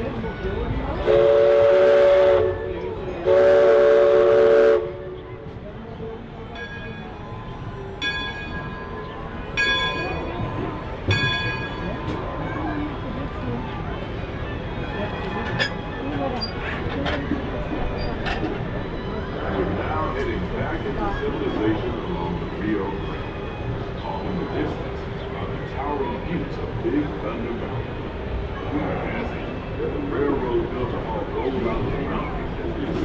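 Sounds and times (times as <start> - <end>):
crowd chatter: 0.0 - 33.0
steam whistle blasts: 1.0 - 5.2
bell ringing: 6.6 - 10.4, 11.1 - 12.0.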